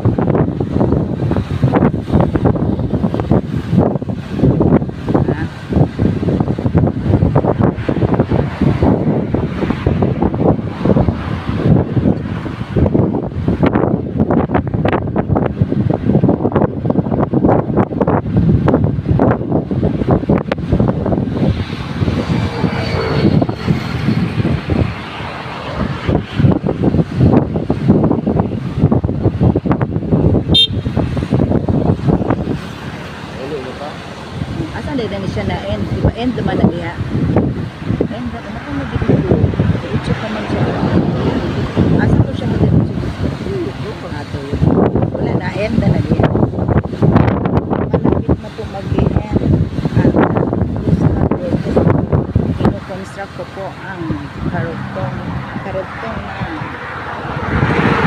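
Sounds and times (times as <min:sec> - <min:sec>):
road and engine noise: 0:00.0 - 0:58.0
wind buffeting microphone: 0:00.0 - 0:58.0.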